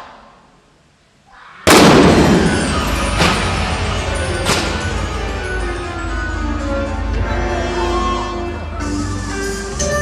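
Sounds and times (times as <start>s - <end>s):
pyrotechnic blast ringing in hall: 1.6s - 6.5s
sharp crack: 1.7s - 3.6s, 4.4s - 4.9s.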